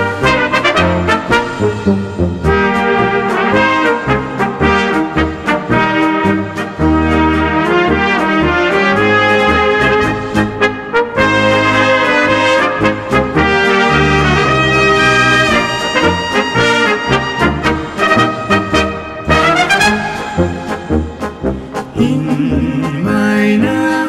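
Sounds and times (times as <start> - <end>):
brass band playing: 0.0 - 23.8.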